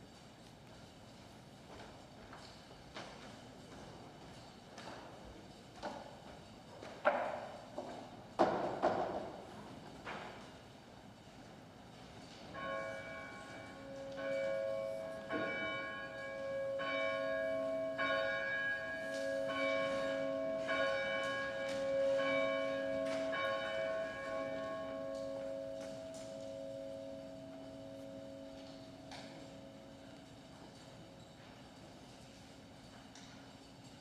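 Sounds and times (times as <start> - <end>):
church bell tolling: 12.5 - 30.6.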